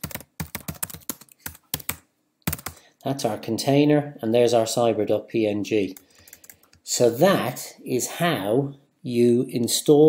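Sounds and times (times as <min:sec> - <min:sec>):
typing on computer keyboard: 0:00.0 - 0:02.8, 0:06.0 - 0:06.8.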